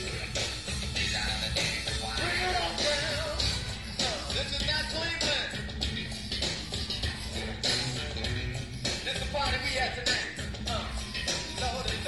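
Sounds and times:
live funk band playing: 0.0 - 12.0.

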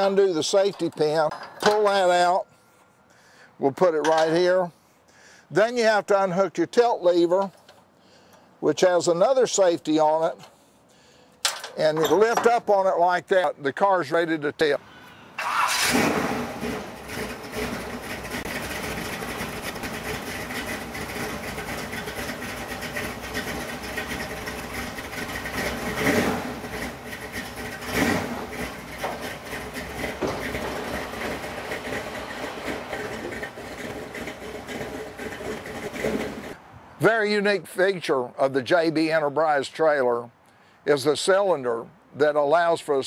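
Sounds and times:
car engine starting and idling: 15.4 - 36.6
engine revving: 15.4 - 36.6.

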